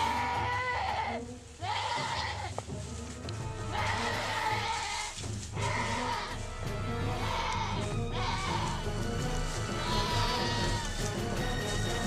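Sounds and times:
goat bleating: 0.0s - 2.6s, 3.7s - 6.4s, 9.6s - 11.1s
background music with low beat: 0.0s - 12.0s.

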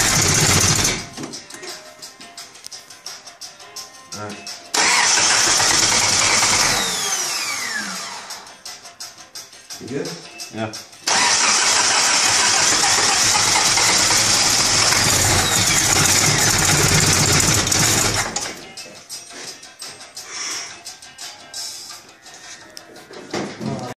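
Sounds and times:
car engine running rough: 0.0s - 1.1s, 4.8s - 7.0s, 11.1s - 18.5s.

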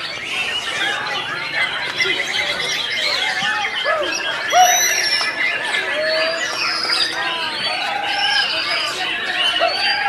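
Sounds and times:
caged birds singing: 0.0s - 10.0s
loud whistled bird phrases: 0.0s - 10.0s.

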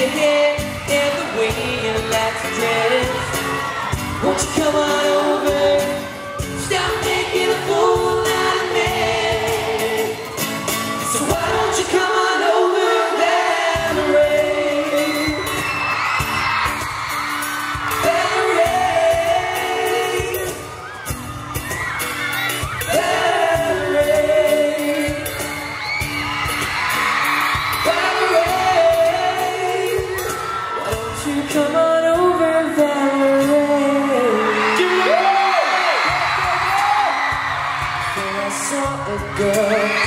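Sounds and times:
person singing: 0.0s - 15.7s, 17.7s - 20.8s, 22.6s - 25.7s, 27.8s - 37.1s, 38.0s - 40.0s
acoustic guitar: 0.0s - 40.0s
crowd cheering and screaming: 0.0s - 40.0s.

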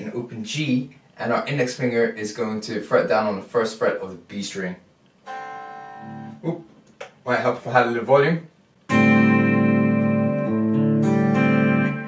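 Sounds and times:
electric guitar chord ringing: 5.3s - 6.4s, 8.9s - 12.0s.

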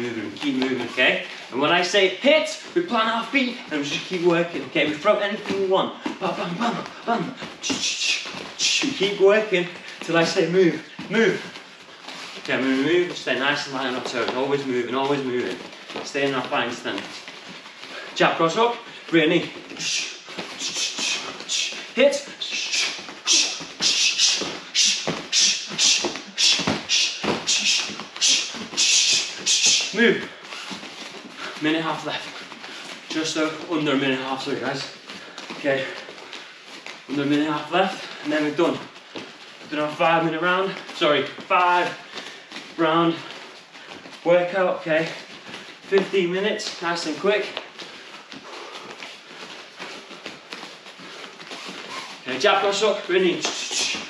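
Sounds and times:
bare feet on rubber mats: 0.0s - 54.0s.

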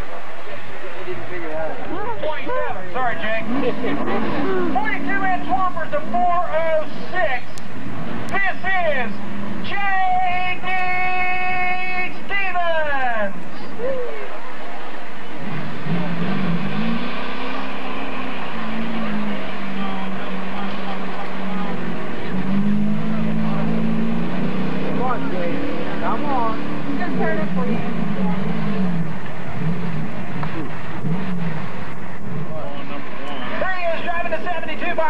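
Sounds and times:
pickup engine revving hard: 2.9s - 9.7s, 15.3s - 35.0s.

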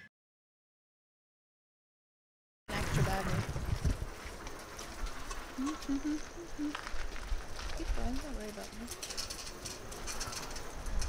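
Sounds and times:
faint outdoor background noise: 2.7s - 11.0s
birds calling: 4.5s - 7.3s.

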